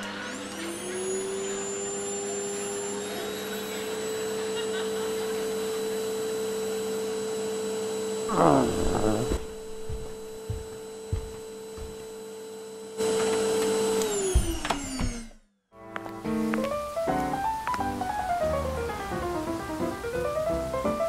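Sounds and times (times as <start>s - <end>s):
motor whine and hum: 0.0s - 15.4s.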